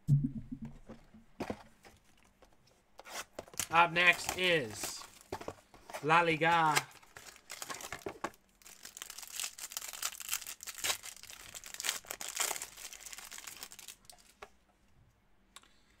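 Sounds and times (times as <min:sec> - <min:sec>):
wrapper crinkling and tearing: 0:03.5 - 0:05.3, 0:06.1 - 0:14.4.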